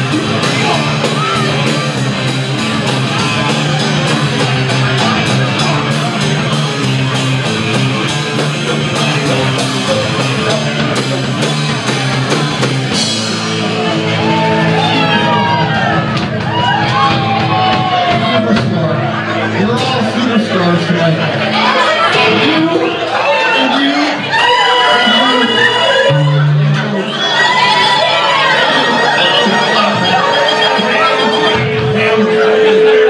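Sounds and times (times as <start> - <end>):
live rock band playing: 0.0 - 33.0
audience shouting and whistling: 9.2 - 18.3, 21.6 - 33.0.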